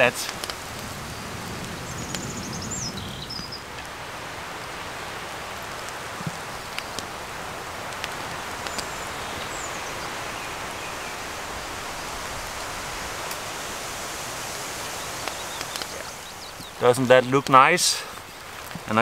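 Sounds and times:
steady rain falling: 0:00.0 - 0:19.0.

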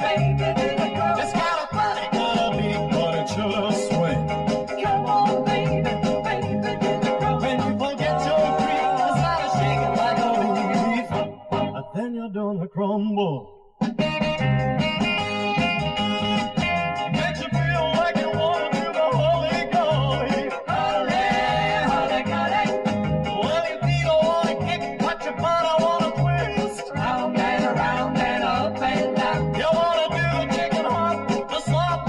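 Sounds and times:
steady bass beat: 0:00.0 - 0:12.2, 0:13.8 - 0:32.0
guitar: 0:00.0 - 0:12.5, 0:13.5 - 0:32.0.

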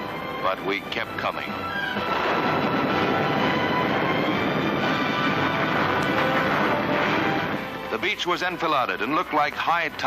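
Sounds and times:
film soundtrack music with held tones: 0:00.0 - 0:10.0
dense rumbling noise: 0:01.5 - 0:08.1.

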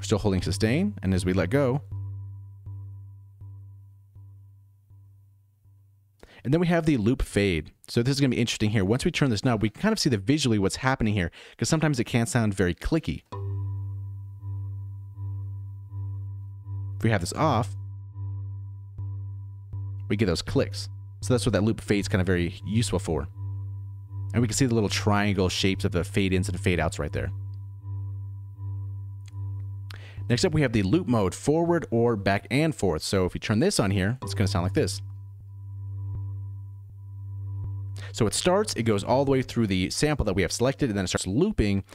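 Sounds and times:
looped marimba note: 0:00.0 - 0:05.2, 0:13.3 - 0:31.9, 0:34.2 - 0:39.7.

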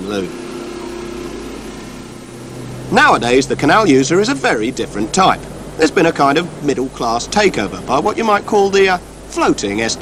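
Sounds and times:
boat engine running steadily: 0:00.0 - 0:10.0.

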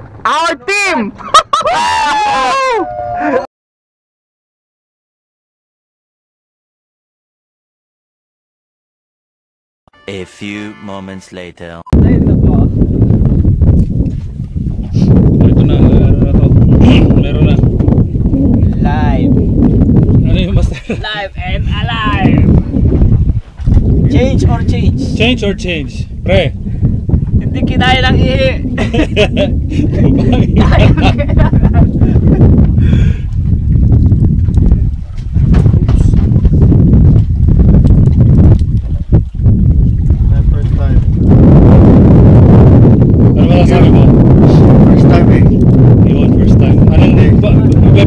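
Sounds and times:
wind buffeting microphone: 0:00.0 - 0:03.5, 0:11.9 - 0:48.0.

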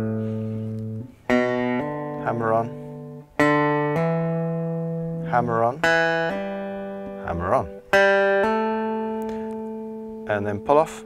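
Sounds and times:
electric guitar notes: 0:00.0 - 0:11.0.

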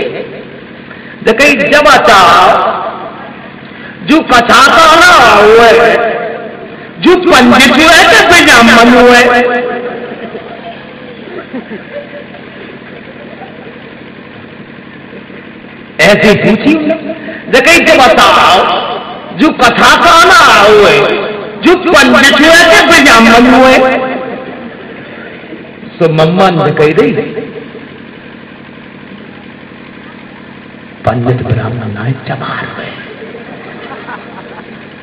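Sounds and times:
low hum: 0:00.0 - 0:35.0.

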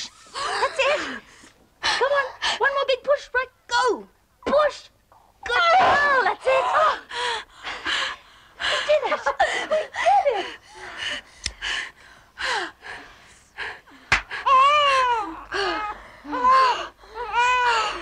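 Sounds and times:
newborn baby crying: 0:14.4 - 0:18.0.

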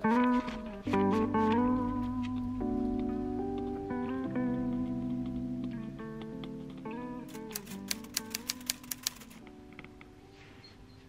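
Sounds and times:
soft background music: 0:00.0 - 0:11.0
typewriter key clicks: 0:07.3 - 0:09.4.

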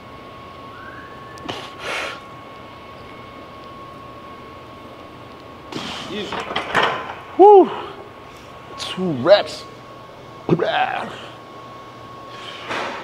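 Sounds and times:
gym room hum: 0:00.0 - 0:13.0.

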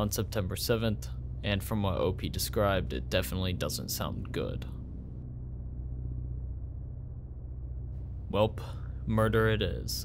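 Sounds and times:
deep hum: 0:00.0 - 0:10.0.

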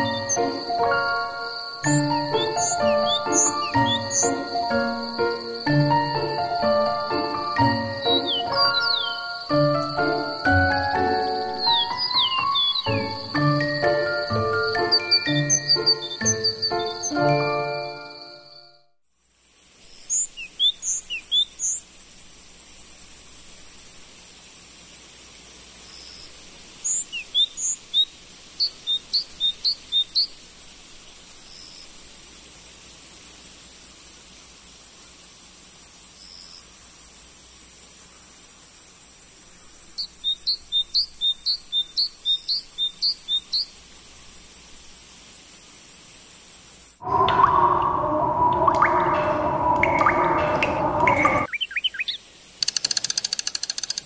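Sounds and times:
bird chirping: 0:00.0 - 0:05.9, 0:07.6 - 0:18.3, 0:19.9 - 0:21.9, 0:25.9 - 0:30.4, 0:39.8 - 0:43.8, 0:47.0 - 0:54.0
pulsing insect chirr: 0:00.0 - 0:54.0.

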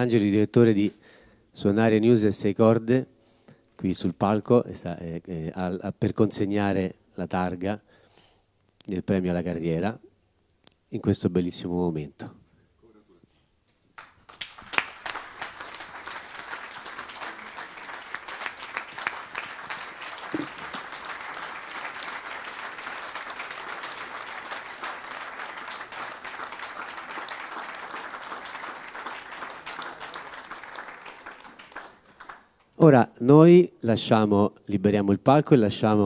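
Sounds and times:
audience applauding: 0:13.9 - 0:32.6.

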